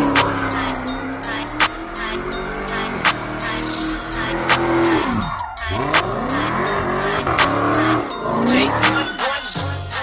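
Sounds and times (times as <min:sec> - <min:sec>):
car engine revving: 0:00.0 - 0:10.0
music with drum beat: 0:00.0 - 0:10.0.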